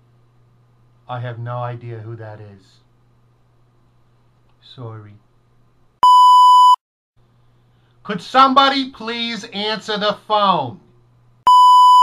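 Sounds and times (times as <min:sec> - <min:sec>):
electronic beep: 0:06.0 - 0:06.8, 0:11.5 - 0:12.0.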